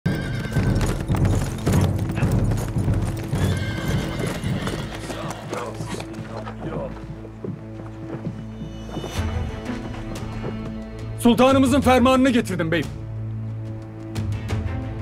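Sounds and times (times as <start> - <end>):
horse hoofbeats on dirt: 0.1 - 11.3
dramatic music with held notes: 0.1 - 15.0.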